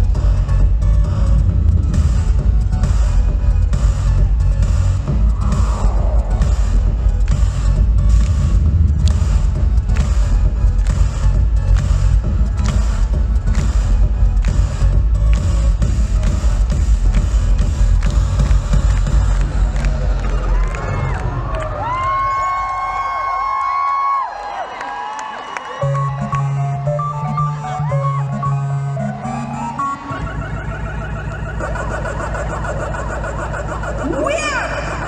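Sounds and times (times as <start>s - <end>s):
electronic concert music: 0.0s - 35.0s
crowd cheering and screaming: 5.2s - 7.0s, 19.9s - 32.0s.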